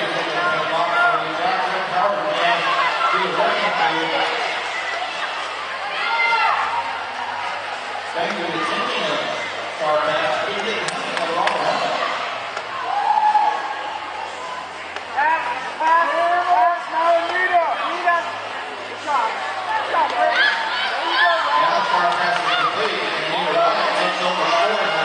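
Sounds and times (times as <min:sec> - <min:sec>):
voices talking and calling out: 0:00.0 - 0:25.0.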